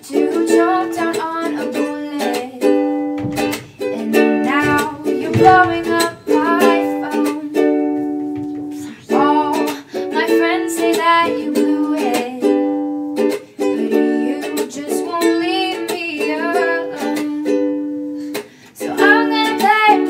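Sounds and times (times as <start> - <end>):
woman singing pop song: 0.0 - 7.9, 8.7 - 12.8, 13.7 - 18.0, 18.8 - 20.0
ukulele strumming: 0.0 - 20.0.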